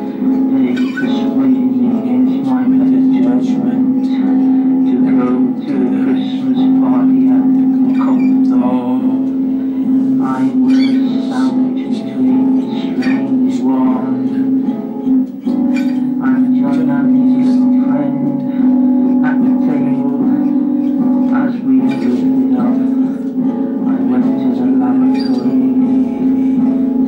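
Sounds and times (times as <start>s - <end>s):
acoustic guitar: 0.0s - 27.0s
man singing: 0.0s - 27.0s.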